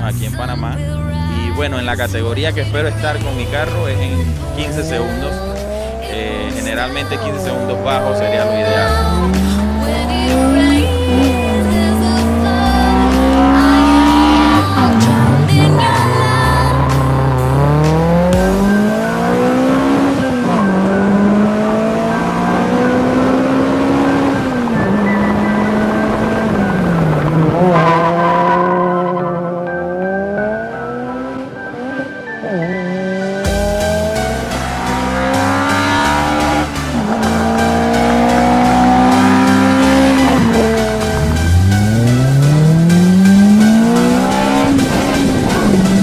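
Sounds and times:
car engine accelerating hard: 0.0s - 46.0s
music with heavy bass beat: 3.1s - 20.9s, 33.3s - 46.0s.

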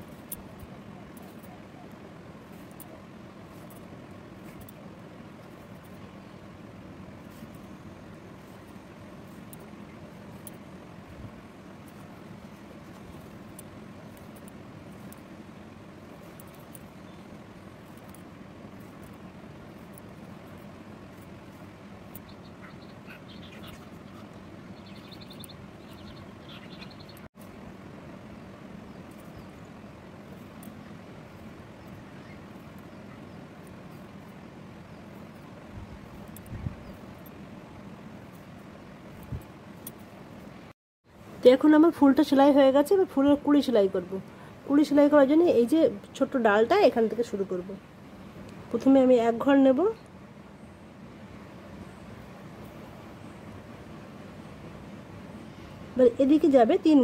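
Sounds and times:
room noise hum and hiss: 0.0s - 57.0s
faint rapid chirps: 16.1s - 40.0s.

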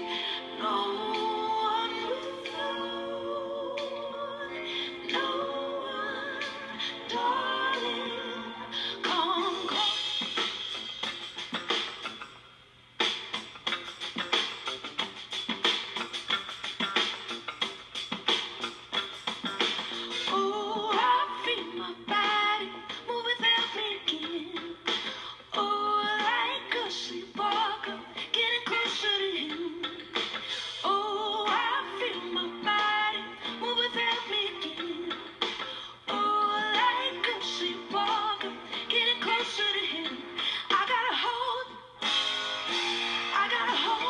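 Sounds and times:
drum kit: 0.0s - 2.9s, 8.8s - 12.4s, 13.0s - 25.4s, 26.0s - 41.2s, 42.0s - 44.0s
woman singing: 0.0s - 10.1s, 20.3s - 30.2s, 30.8s - 35.4s, 36.0s - 41.9s, 43.3s - 44.0s
rock band through tv speaker: 0.0s - 44.0s.

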